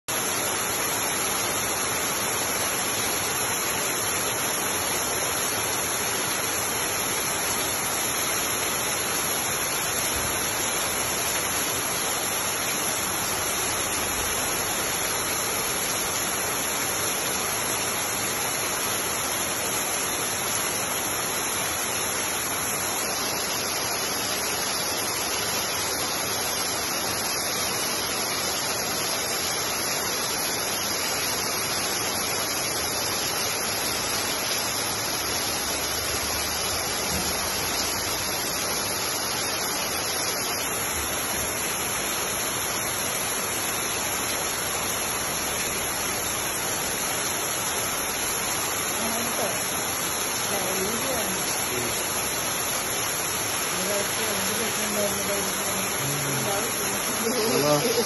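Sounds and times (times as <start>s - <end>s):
heavy rain falling: 0.1s - 58.0s.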